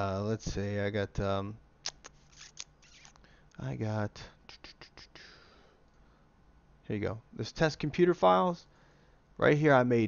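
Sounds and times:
short breath: 4.2 - 6.3, 8.7 - 9.3.

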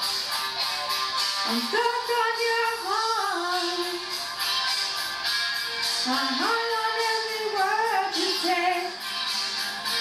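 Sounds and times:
woman singing karaoke: 1.4 - 4.2, 5.9 - 9.1.

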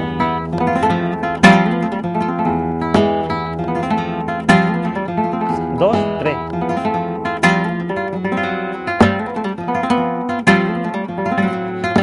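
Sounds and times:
flamenco guitar: 0.0 - 12.0.

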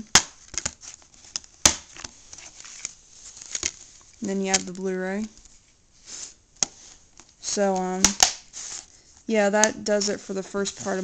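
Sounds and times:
rustling: 0.0 - 11.0.

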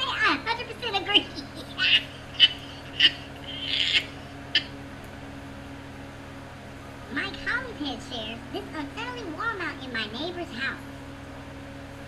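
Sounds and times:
stifled breathy laughter: 1.6 - 4.7.

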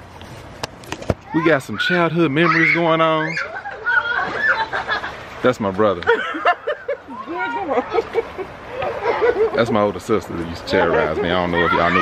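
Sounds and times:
background voices talking or laughing: 1.3 - 12.0.

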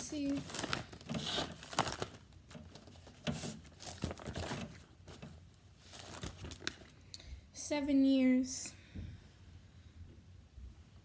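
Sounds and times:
paper pages rustling: 0.0 - 7.0.

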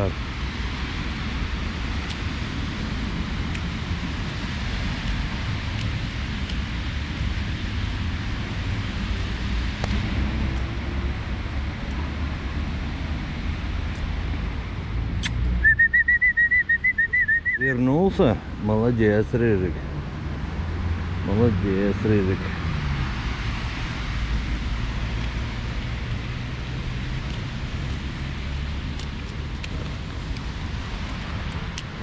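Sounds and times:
low outdoor rumble: 0.0 - 32.0
person whistling high note: 15.6 - 17.7.

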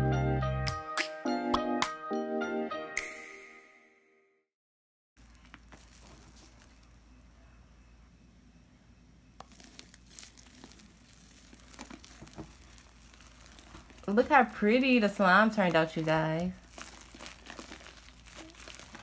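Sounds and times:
slime squelching and crackling: 5.2 - 7.2, 9.4 - 19.0.

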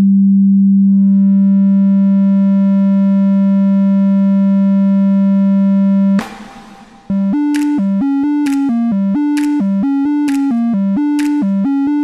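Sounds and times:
synthesizer tone brightening: 6.2 - 10.2.

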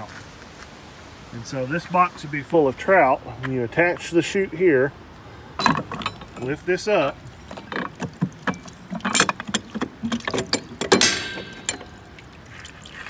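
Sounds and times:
metal gate clanking and rattling: 5.6 - 12.3.

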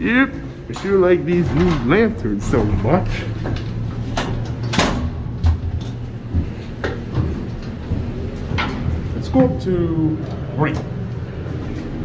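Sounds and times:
steady low hum: 0.0 - 12.0
footsteps in elevator: 0.2 - 12.0.

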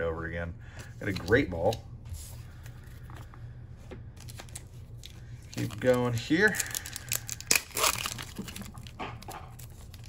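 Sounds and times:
foil wrapper crinkling: 4.2 - 10.0.

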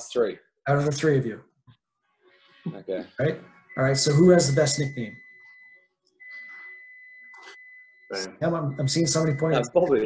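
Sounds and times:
high-pitched electronic tone: 2.4 - 10.0.

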